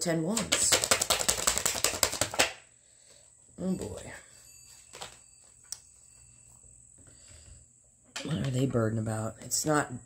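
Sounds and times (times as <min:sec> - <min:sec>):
cards being shuffled: 0:00.4 - 0:02.6.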